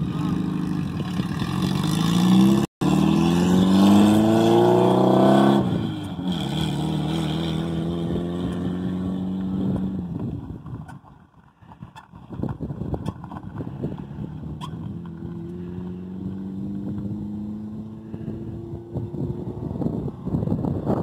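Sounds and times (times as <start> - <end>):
vehicle engine accelerating: 0.0 - 10.9, 13.2 - 21.0.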